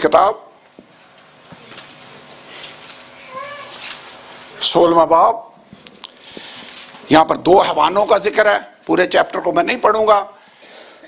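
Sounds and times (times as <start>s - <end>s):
faint scratchy noises: 0.9s - 4.9s.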